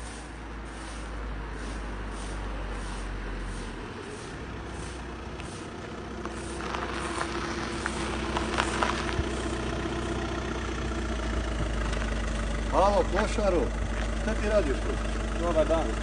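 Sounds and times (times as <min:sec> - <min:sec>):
car engine running: 0:00.0 - 0:16.0
stones crackling under tyres: 0:00.7 - 0:16.0.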